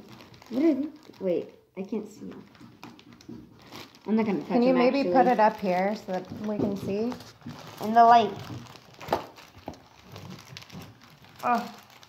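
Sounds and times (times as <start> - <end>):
plastic wrapping crinkling: 0.0 - 12.0.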